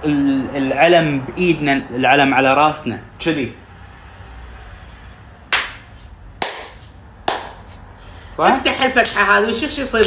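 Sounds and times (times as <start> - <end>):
hand claps: 5.5 - 7.8, 9.0 - 9.3.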